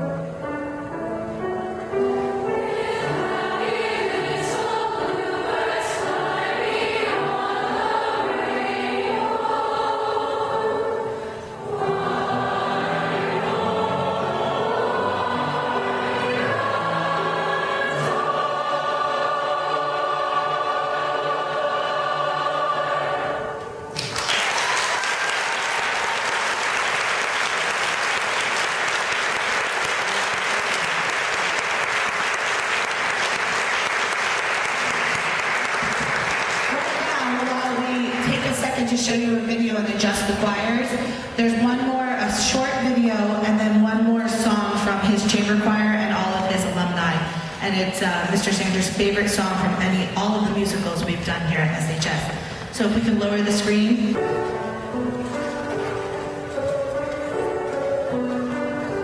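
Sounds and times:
mixed choir singing: 0:01.4 - 0:47.3
audience applauding: 0:24.0 - 0:38.2.

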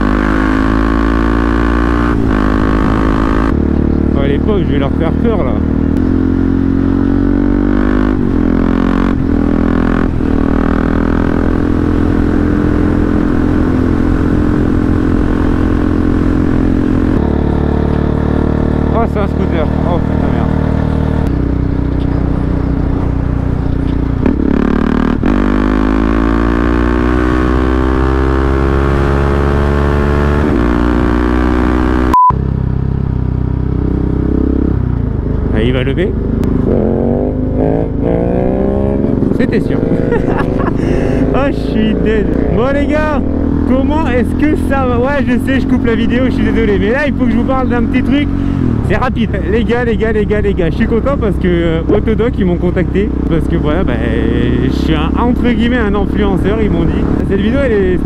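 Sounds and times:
motorcycle engine accelerating: 0:00.0 - 0:58.0
high beep: 0:32.1 - 0:32.4.

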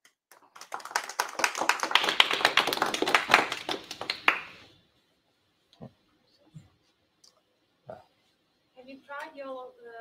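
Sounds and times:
small audience applauding: 0:00.0 - 0:04.7.

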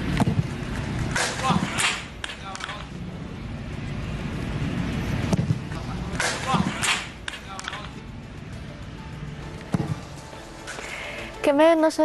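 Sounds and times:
footballs being kicked hard: 0:09.7 - 0:10.1.

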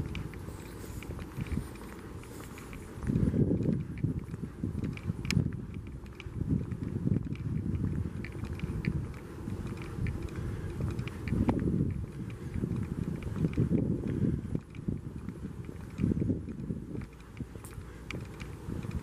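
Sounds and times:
footsteps walking: 0:00.0 - 0:19.0
low rumbling on microphone: 0:00.0 - 0:19.0.

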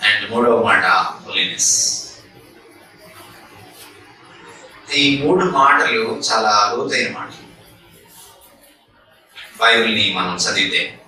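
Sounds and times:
man speaking: 0:00.0 - 0:02.3, 0:04.4 - 0:07.5, 0:09.4 - 0:11.0.

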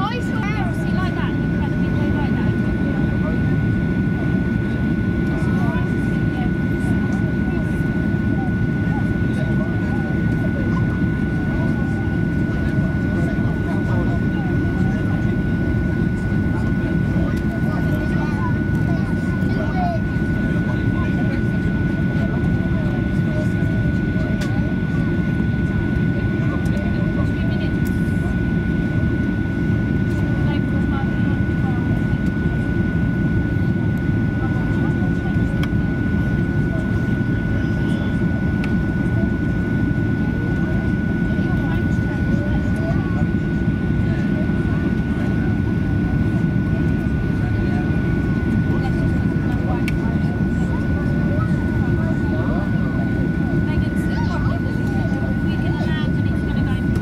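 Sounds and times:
aircraft cabin engine rumble: 0:00.0 - 0:57.0.

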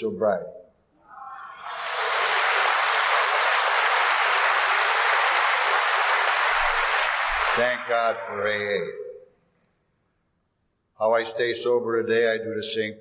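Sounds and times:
audience applauding: 0:01.5 - 0:08.5.

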